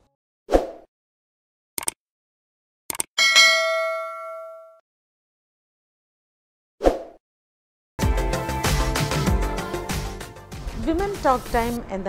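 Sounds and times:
notification bell ding: 3.2 - 4.8.

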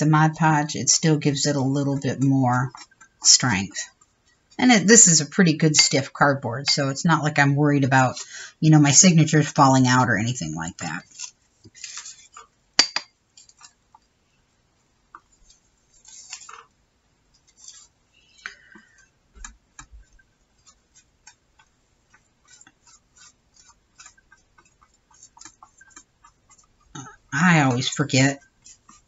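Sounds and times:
paper rustling: 11.0 - 12.5, 15.4 - 16.8
small taps and clicks: 18.4 - 27.1.

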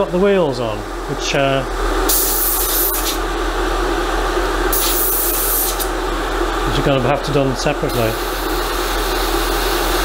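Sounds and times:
steady hum: 0.0 - 10.0
airbrush spraying hiss: 2.1 - 3.2, 4.7 - 5.9.

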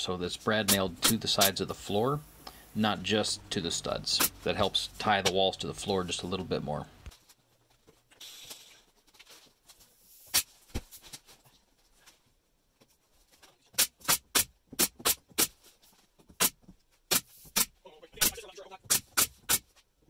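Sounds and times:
nail gun shots: 0.7 - 1.6, 13.8 - 15.2, 16.4 - 19.7.

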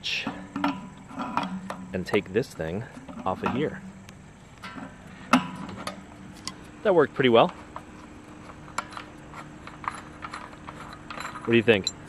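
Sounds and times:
faint metal squeak: 7.6 - 12.0.

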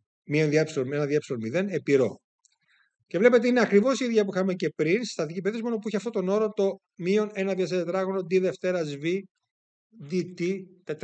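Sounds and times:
man speaking: 0.3 - 2.2, 3.2 - 9.3, 10.0 - 11.0.

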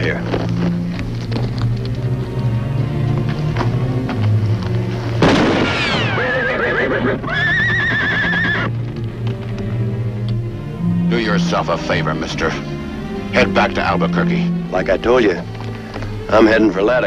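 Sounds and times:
background music: 0.0 - 17.0
sudden bang: 5.2 - 6.2
horses neighing: 5.7 - 8.8.

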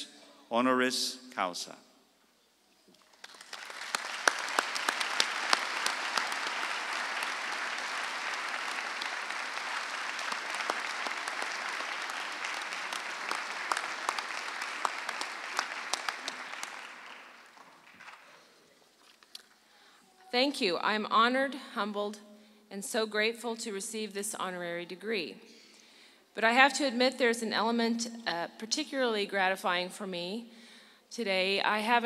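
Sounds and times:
audience applause: 3.0 - 18.6.

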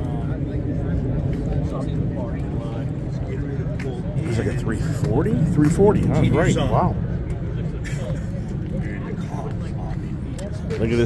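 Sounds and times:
people talking indistinctly: 0.0 - 11.0
steady low rumble: 0.0 - 11.0.

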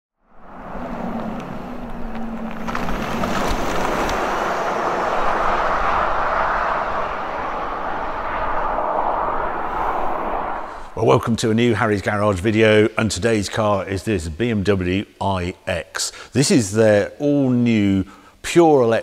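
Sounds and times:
low hum: 0.2 - 11.8
car tyre and engine noise: 0.2 - 12.0.

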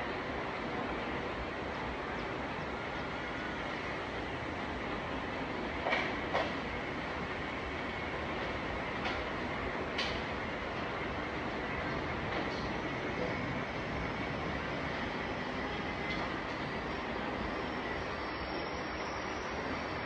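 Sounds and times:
rumbling background noise: 0.0 - 18.1.

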